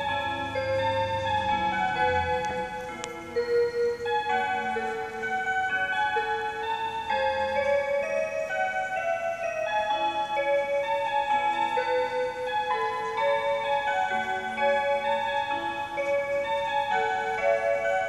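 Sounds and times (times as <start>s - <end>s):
wall clock playing melody: 0.0s - 18.0s.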